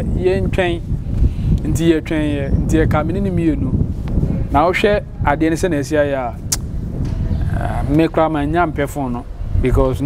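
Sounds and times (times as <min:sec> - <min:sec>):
man talking: 0:00.0 - 0:00.9, 0:01.6 - 0:03.8, 0:04.5 - 0:06.5, 0:07.4 - 0:10.0
street traffic rumble: 0:00.0 - 0:10.0
sharp click: 0:06.5 - 0:07.2.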